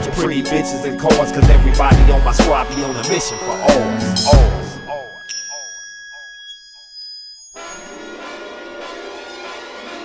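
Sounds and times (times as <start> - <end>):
rap beat: 0.0 - 5.8.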